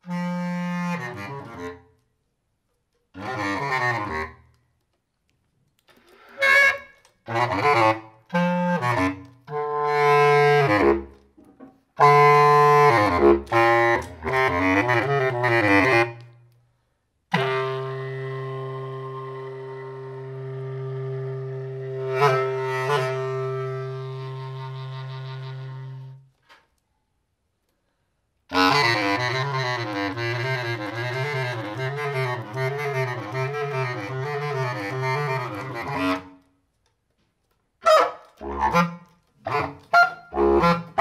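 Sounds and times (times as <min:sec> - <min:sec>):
bass clarinet improvising: 0:00.0 - 0:02.0, 0:03.1 - 0:04.6, 0:05.7 - 0:16.5, 0:17.3 - 0:26.6, 0:28.5 - 0:36.5, 0:37.8 - 0:41.0.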